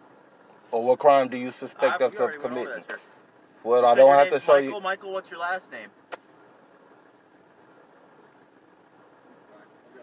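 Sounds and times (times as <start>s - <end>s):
faint car cabin hum: 0.0s - 10.0s.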